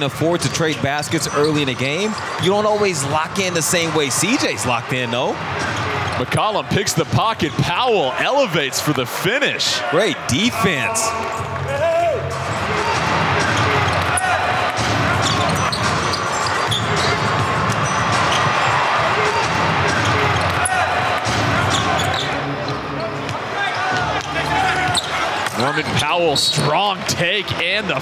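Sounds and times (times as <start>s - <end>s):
arena noise: 0.0s - 28.0s.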